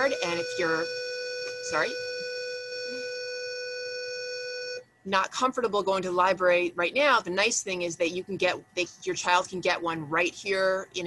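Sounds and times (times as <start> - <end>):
steady buzzy electronic tone: 0.0 - 4.9.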